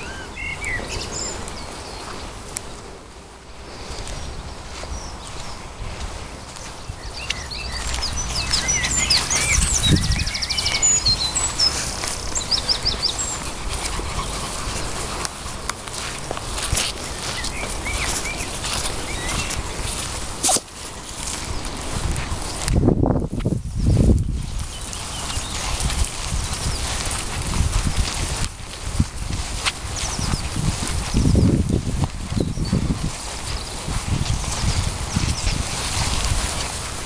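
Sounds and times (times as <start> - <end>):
songbirds chirping and singing: 0.0 - 2.8, 3.8 - 20.2, 20.8 - 36.8
footsteps through grass: 0.0 - 37.0.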